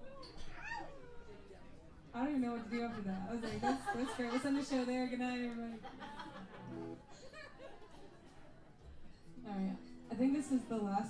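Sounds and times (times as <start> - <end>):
quiet talking: 0.0 - 11.0.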